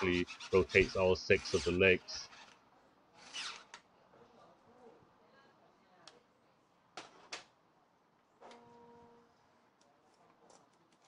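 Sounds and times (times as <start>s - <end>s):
toy gear motor whirring: 0.0s - 2.6s, 3.2s - 3.8s.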